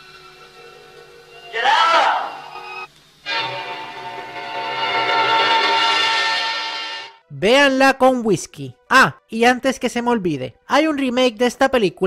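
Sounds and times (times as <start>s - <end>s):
sustained chord: 0.0s - 7.3s.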